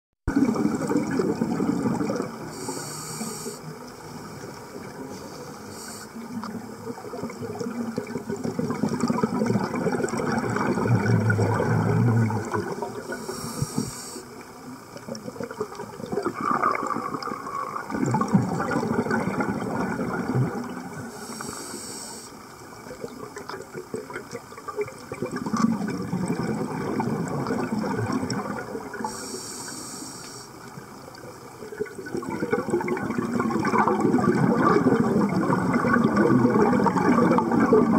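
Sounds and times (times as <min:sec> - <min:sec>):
exhaled air bubbling: 0:00.3 - 0:37.9
diver inhaling through regulator: 0:02.4 - 0:03.8, 0:05.1 - 0:06.3, 0:13.0 - 0:14.4, 0:21.1 - 0:22.4, 0:29.0 - 0:30.6.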